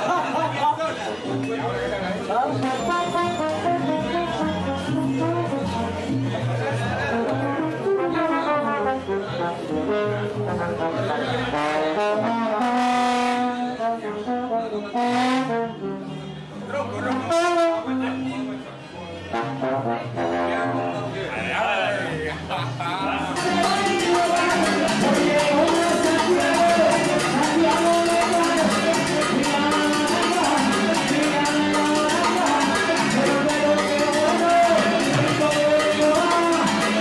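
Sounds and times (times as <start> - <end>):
people talking: 0.0 - 12.4, 13.6 - 37.0
trombone playing: 2.5 - 6.2, 7.0 - 16.4, 17.1 - 18.6, 19.3 - 21.2.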